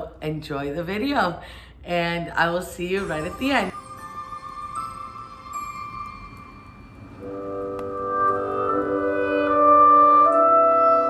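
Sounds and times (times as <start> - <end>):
background music with sustained chords: 3.0 - 11.0.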